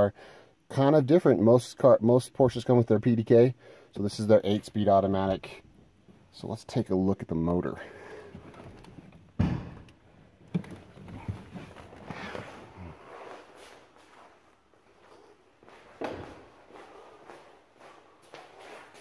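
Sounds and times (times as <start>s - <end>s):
footsteps: 10.5s - 19.0s.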